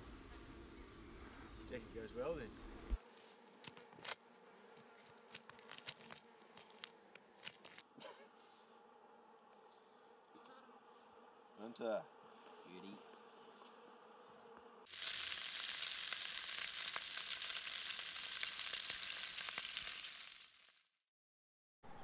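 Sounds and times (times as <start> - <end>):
meat sizzling in a pan: 14.9 - 20.9.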